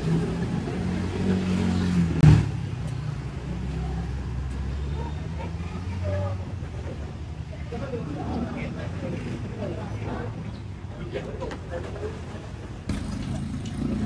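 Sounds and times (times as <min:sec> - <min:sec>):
faint voices: 0:03.4 - 0:14.0
vehicle engine running: 0:12.9 - 0:14.0.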